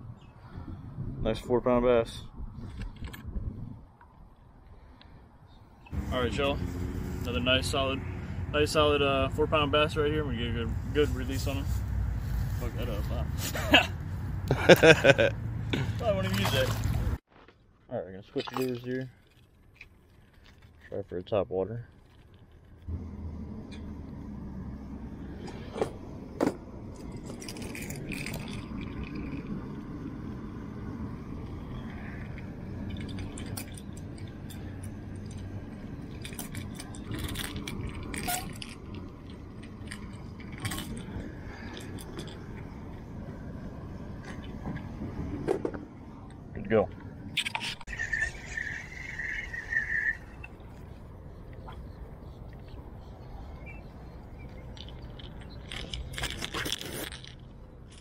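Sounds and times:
low background rumble: 21.7s - 56.4s.

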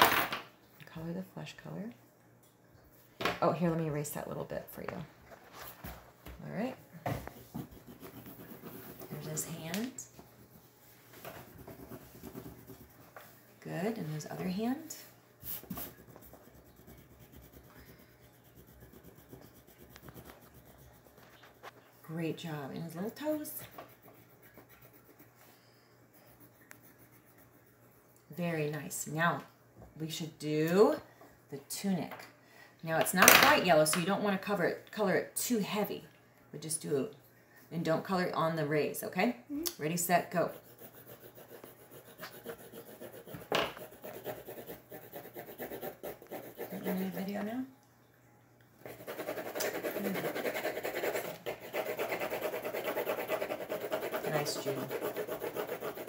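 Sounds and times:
pencil shading on paper: 7.6s - 9.6s, 11.4s - 13.1s, 15.5s - 21.6s, 22.3s - 25.4s, 26.1s - 27.8s, 40.2s - 47.3s, 48.8s - 56.0s.

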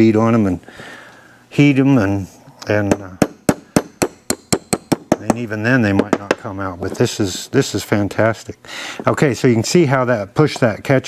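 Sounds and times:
hammer tapping metal punch: 2.8s - 7.0s.

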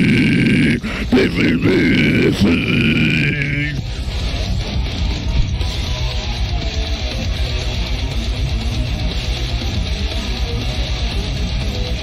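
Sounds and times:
screamed metal vocals: 0.0s - 5.0s
distorted heavy metal music: 0.0s - 12.0s.

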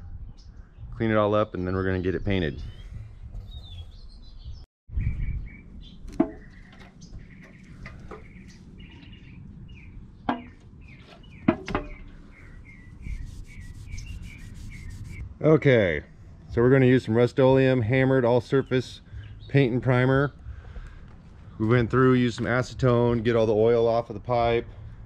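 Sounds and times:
small birds chirping: 0.2s - 15.3s, 18.4s - 21.6s
sharp knocks: 10.3s - 10.6s
rag wiping steel pipe: 13.0s - 15.2s.

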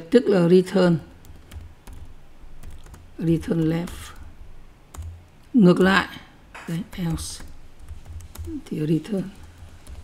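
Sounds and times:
keyboard typing clicks: 1.2s - 4.3s, 4.9s - 6.0s, 6.7s - 10.0s.

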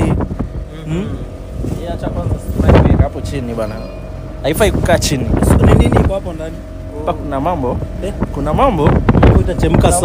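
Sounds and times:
boat engine running: 0.0s - 10.0s
wind on microphone: 0.0s - 10.0s.

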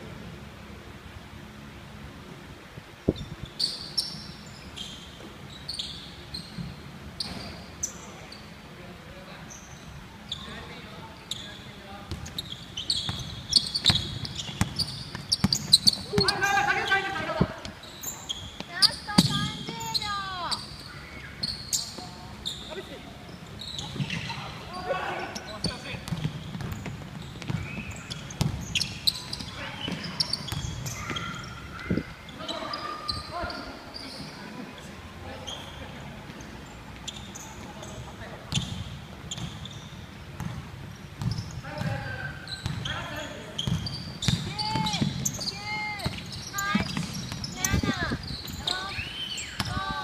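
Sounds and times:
sneakers squeaking: 3.0s - 50.0s
basketball bouncing: 13.0s - 16.4s, 18.6s - 19.9s, 25.6s - 31.4s, 40.3s - 42.0s, 42.6s - 43.0s, 43.6s - 48.7s.

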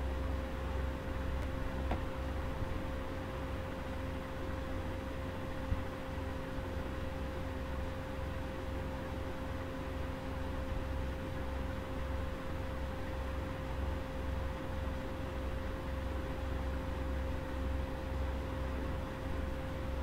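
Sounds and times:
low rumble hum and hiss: 0.0s - 20.0s.

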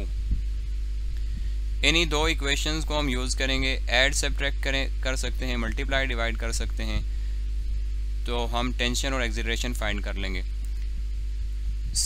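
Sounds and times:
low electrical hum: 0.0s - 12.0s
person speaking: 1.8s - 7.1s, 8.3s - 10.5s.

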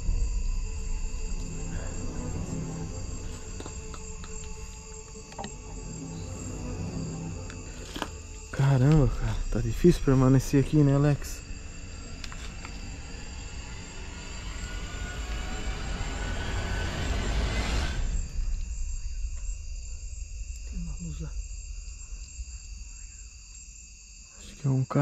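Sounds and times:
rushing noise: 0.0s - 24.4s
crickets chirring: 0.0s - 25.0s.

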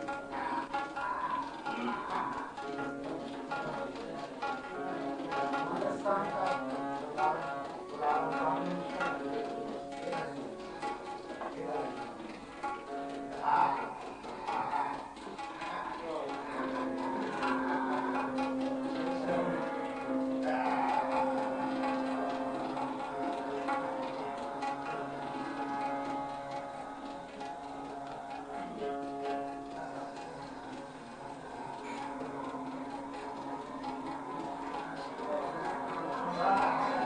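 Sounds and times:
light tabla strokes: 0.0s - 37.0s.

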